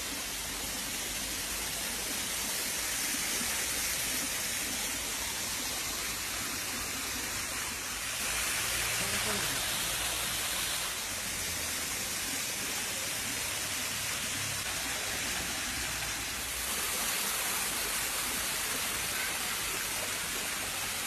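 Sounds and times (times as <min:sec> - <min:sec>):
falling water rushing: 0:00.0 - 0:21.0.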